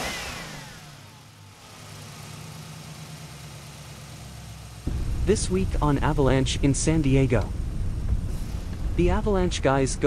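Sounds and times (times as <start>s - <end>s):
falling engine whine: 0.0s - 10.0s
truck engine starting and idling: 0.0s - 10.0s.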